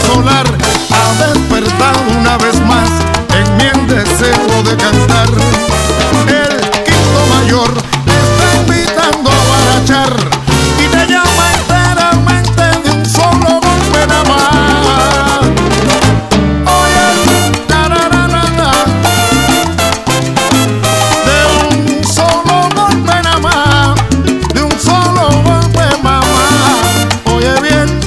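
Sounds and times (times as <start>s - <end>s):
percussion: 0.0s - 28.0s
pitched melodic parts: 0.0s - 28.0s
salsa bass line: 0.0s - 28.0s.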